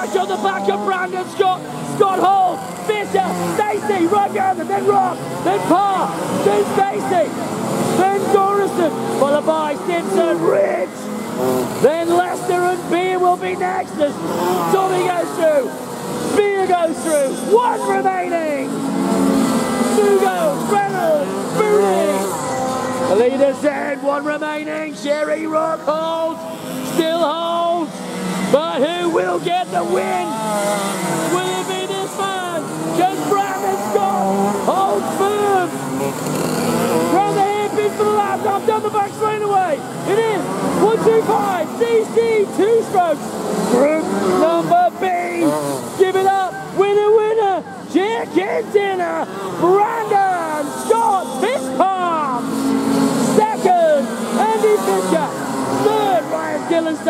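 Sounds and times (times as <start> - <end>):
man commentating excitedly: 0.0 - 57.0
man talking over loudspeaker: 0.0 - 57.0
two-stroke kart engines: 0.0 - 57.0.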